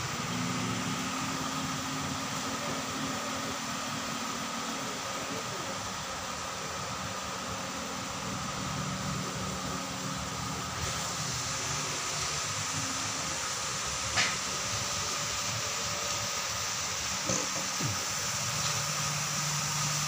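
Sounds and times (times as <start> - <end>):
mechanical hum: 0.0 - 20.0.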